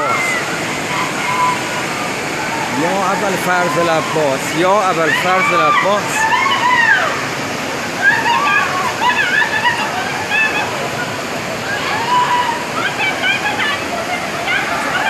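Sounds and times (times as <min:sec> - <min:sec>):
floodwater rushing: 0:00.0 - 0:15.0
people talking and exclaiming: 0:00.0 - 0:15.0.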